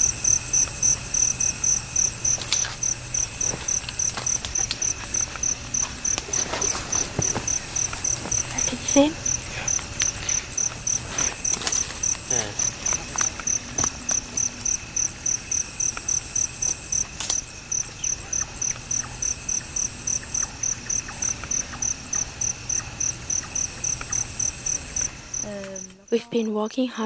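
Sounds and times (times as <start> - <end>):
cricket chirping: 0.0 - 27.0
high insect drone: 0.0 - 27.0
twigs snapping and rustling: 2.2 - 8.8, 9.4 - 14.8.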